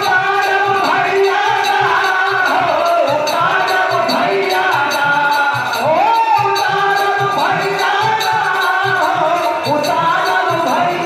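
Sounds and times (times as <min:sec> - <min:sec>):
drum beating: 0:00.0 - 0:11.0
jingling percussion: 0:00.0 - 0:11.0
men singing folk song: 0:00.0 - 0:11.0.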